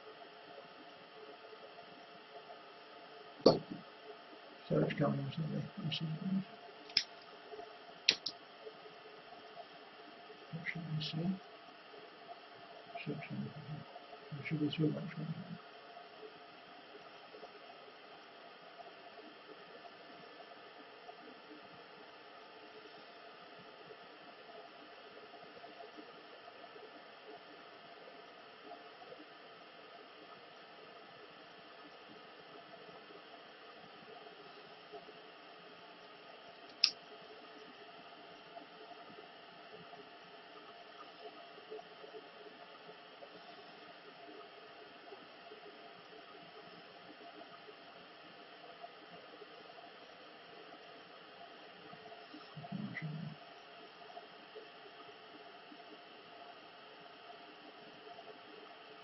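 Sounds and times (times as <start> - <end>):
faint background hiss: 0.0 - 59.0
sharp click: 8.1 - 8.4, 36.7 - 37.0.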